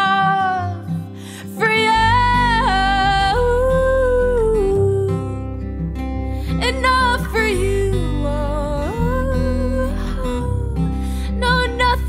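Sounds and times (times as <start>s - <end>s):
acoustic guitar: 0.0s - 12.0s
female pop vocal: 0.0s - 12.0s.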